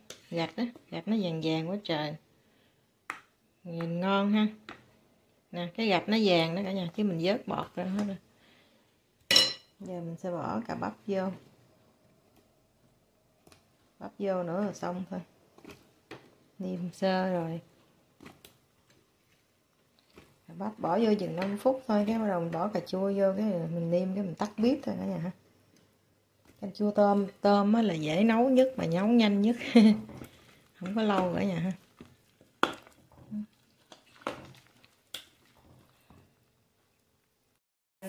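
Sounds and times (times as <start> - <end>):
spoon clinking against pot: 9.3 - 9.7
spoon stirring soup in a pot: 28.6 - 36.3.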